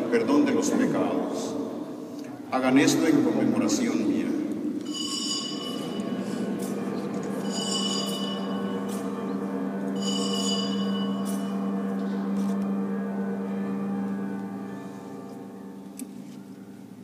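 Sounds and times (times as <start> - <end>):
church bells ringing: 0.0 - 17.0
bright bell strikes: 7.3 - 12.6.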